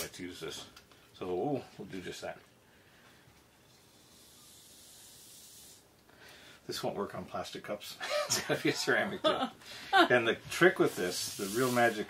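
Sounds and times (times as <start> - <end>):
coffee press hissing: 3.9 - 5.9, 10.8 - 12.0.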